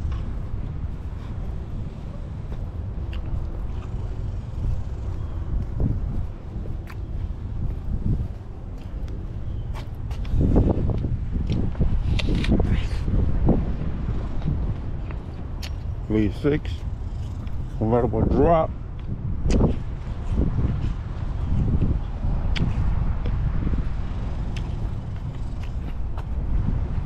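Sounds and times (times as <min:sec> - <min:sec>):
footsteps on asphalt: 0:00.0 - 0:11.9, 0:22.6 - 0:26.8
wind rumbling on microphone: 0:00.0 - 0:27.0.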